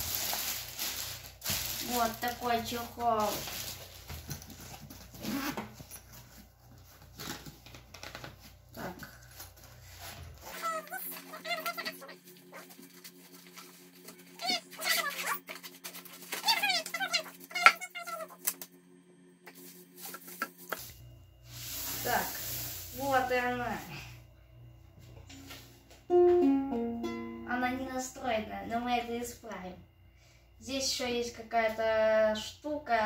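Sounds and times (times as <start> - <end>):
zipper being unzipped: 5.2 - 5.8.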